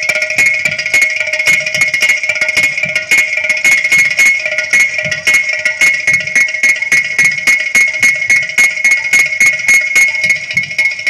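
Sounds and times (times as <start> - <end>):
hand drums and clay pots: 0.0 - 11.0.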